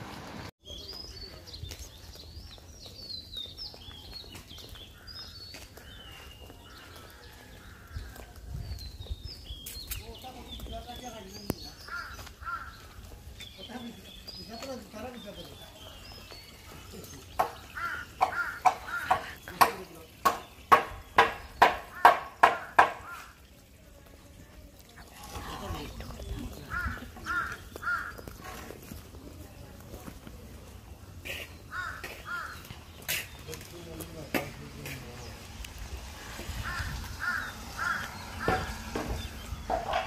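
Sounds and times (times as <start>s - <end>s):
crow cawing: 11.9s - 13.0s, 17.5s - 19.4s, 21.8s - 23.4s, 26.7s - 28.3s, 31.2s - 32.8s, 36.6s - 38.9s.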